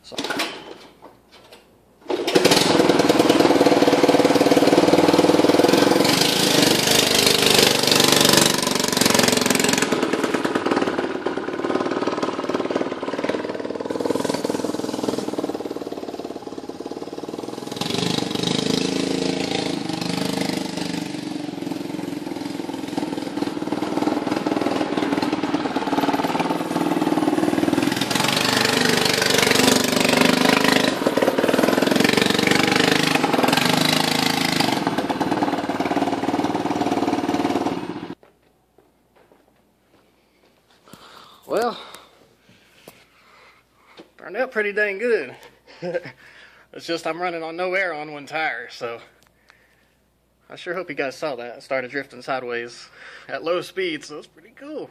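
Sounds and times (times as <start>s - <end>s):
go-kart engine revving: 2.1s - 38.2s.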